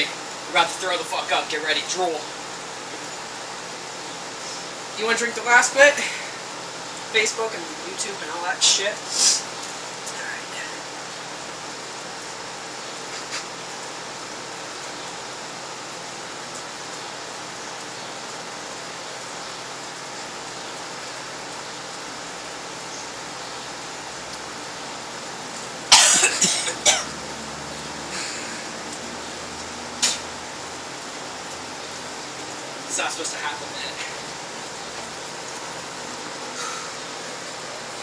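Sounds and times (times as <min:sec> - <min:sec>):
steady background hiss: 0:00.0 - 0:38.0
man retching and coughing: 0:25.9 - 0:27.2.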